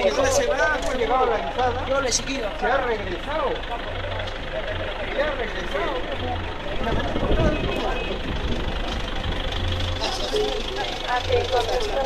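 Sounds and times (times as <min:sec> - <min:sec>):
men talking: 0:00.0 - 0:12.0
vehicle engine idling: 0:00.0 - 0:12.0.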